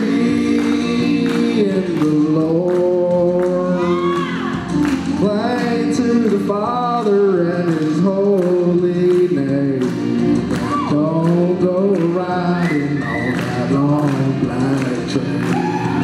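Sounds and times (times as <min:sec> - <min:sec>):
instrumental accompaniment with beat: 0:00.0 - 0:16.0
man singing country song: 0:00.0 - 0:16.0.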